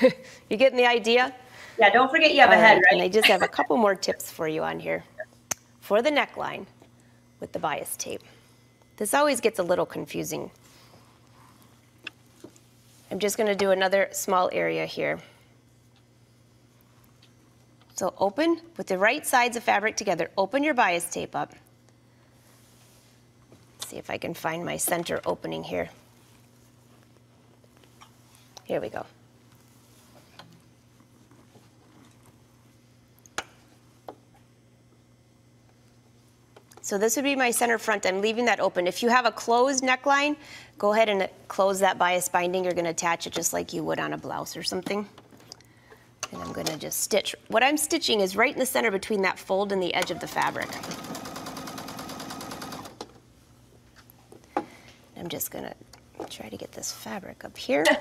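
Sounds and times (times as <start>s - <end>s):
sewing machine stitching: 50.2s - 53.0s.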